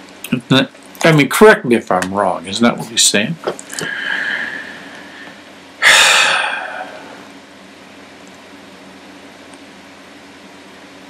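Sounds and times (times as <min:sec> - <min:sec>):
man exhaling loudly: 0:03.8 - 0:07.3.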